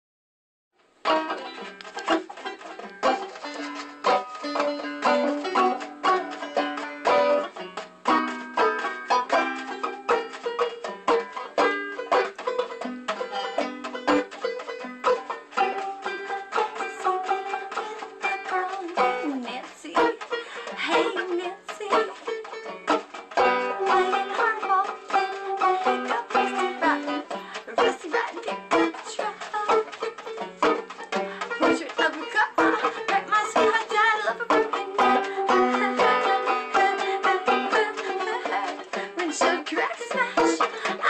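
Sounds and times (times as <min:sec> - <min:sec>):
solo banjo playing: 0:00.8 - 0:41.0.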